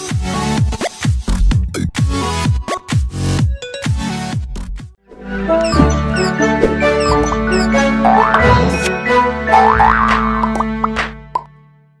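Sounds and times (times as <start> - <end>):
logo jingle music: 5.2 - 9.5.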